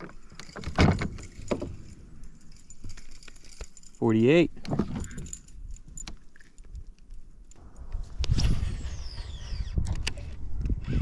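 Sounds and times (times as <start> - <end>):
metal rig clinking and rattling: 0.0 - 7.6.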